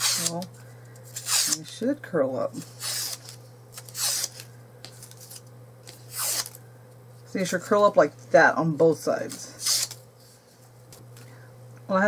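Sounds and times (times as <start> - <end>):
paper scraping along metal edge: 0.0 - 0.5, 1.2 - 1.7, 2.6 - 4.4, 5.0 - 6.6, 9.6 - 10.0.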